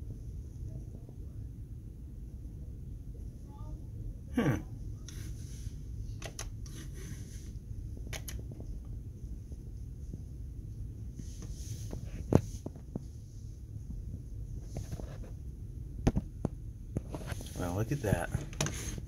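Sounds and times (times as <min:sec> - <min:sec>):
computer equipment humming: 0:00.0 - 0:19.0.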